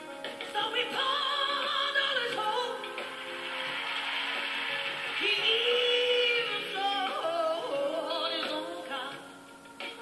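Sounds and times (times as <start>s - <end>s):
steady hiss: 2.7s - 6.9s.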